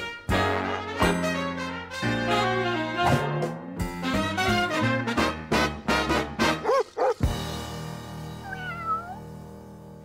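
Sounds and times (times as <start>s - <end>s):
jazzy brass music: 0.0s - 7.5s
short meow-like cry: 8.4s - 9.2s.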